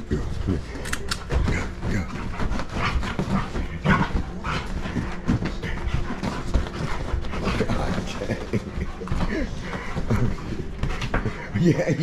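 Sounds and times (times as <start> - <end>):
dog paws scrabbling on mattress: 0.0 - 12.0
sheets rustling: 0.0 - 12.0.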